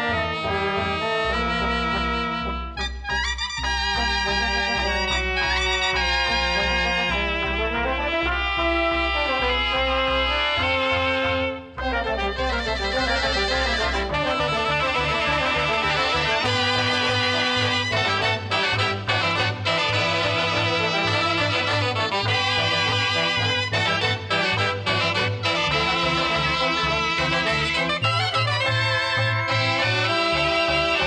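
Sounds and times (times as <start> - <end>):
double bass low notes: 0.0 - 31.0
reed instruments and trumpets: 0.0 - 31.0.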